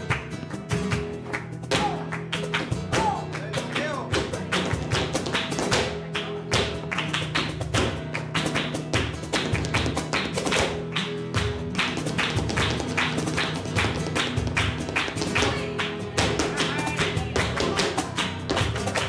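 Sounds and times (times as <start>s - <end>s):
flamenco guitar: 0.0s - 19.0s
hand-clapping: 0.0s - 19.0s.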